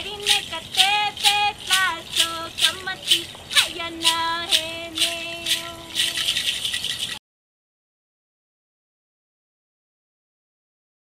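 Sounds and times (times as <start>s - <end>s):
hand rattle shaking: 0.0s - 7.2s.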